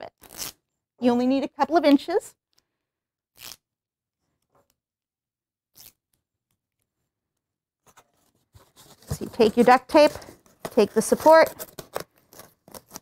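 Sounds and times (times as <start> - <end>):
duct tape ripping: 0.2 - 0.6, 3.4 - 3.7, 5.7 - 6.1, 11.3 - 13.0.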